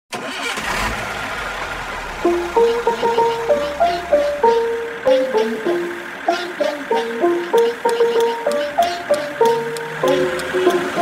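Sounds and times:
bus engine starting and rumbling: 0:00.1 - 0:11.0.

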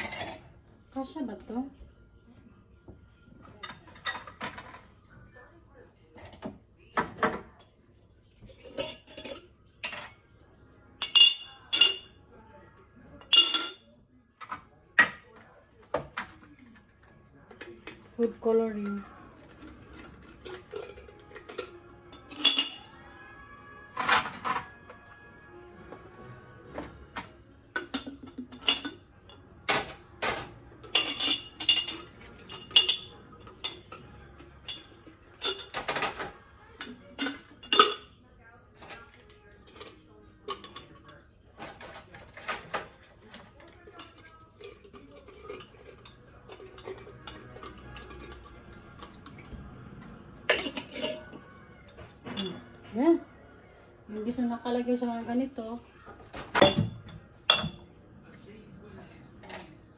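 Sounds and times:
glass jars clinking: 0:00.0 - 0:00.6, 0:03.5 - 0:04.9, 0:08.4 - 0:10.2, 0:11.0 - 0:12.2, 0:13.2 - 0:15.2, 0:19.6 - 0:23.2, 0:26.7 - 0:38.2, 0:38.8 - 0:53.1, 0:56.2 - 0:57.9.

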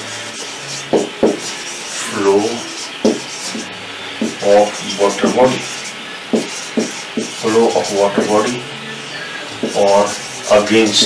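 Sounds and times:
marker pen on whiteboard: 0:00.0 - 0:08.6, 0:09.5 - 0:11.0.

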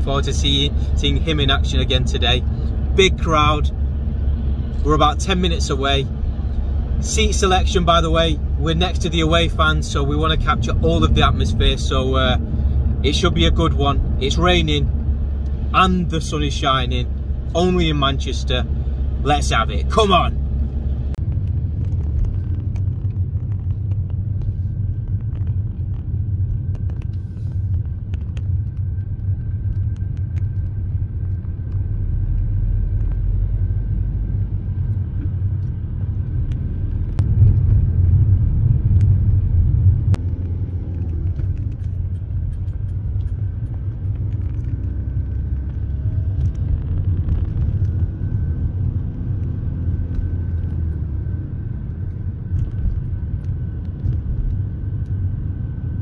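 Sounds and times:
car interior rumble: 0:00.0 - 0:56.0
faint steady whine: 0:00.0 - 0:56.0.

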